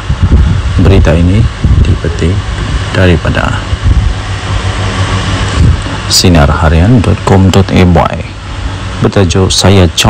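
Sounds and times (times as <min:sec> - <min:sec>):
even hiss: 0:00.0 - 0:10.0
low hum: 0:00.0 - 0:10.0.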